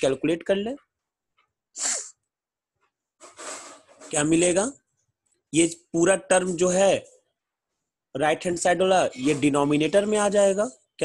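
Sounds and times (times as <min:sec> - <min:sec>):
man's hissy breath burst: 0:01.8 - 0:02.2.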